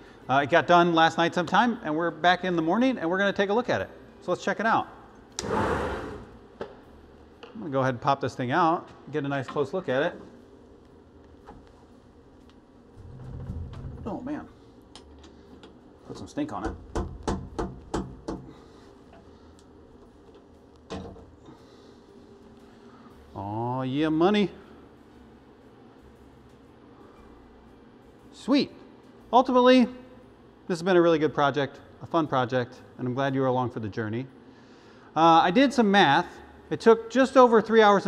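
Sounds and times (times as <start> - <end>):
sliding door rushing open: 5.4 - 6.4.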